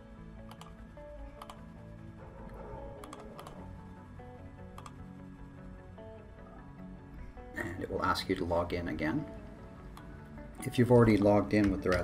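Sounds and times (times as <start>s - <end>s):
soft background music: 0.0s - 12.0s
computer keys clicking: 0.4s - 0.8s, 1.4s - 1.7s, 3.0s - 3.7s, 4.7s - 5.0s.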